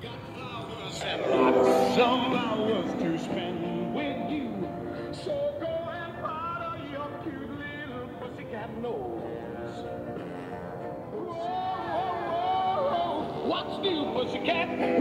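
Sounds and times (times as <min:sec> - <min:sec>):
song playing from portable speaker: 0:00.0 - 0:15.0.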